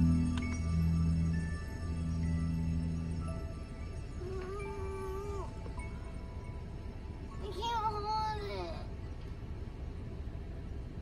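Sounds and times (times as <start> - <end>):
steady high tone: 0.0 - 9.1.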